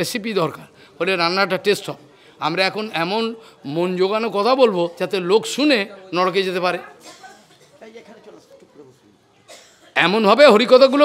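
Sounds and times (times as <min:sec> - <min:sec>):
short cough: 0:07.0 - 0:07.9, 0:09.4 - 0:10.0
man talking through microphone: 0:10.0 - 0:11.0.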